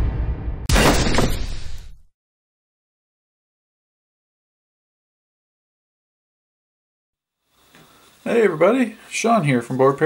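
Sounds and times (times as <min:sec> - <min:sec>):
heavy impact hit: 0:00.0 - 0:02.1.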